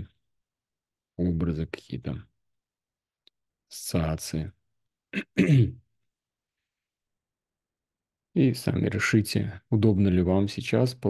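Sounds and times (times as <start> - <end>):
man clearing his throat: 5.2 - 5.8.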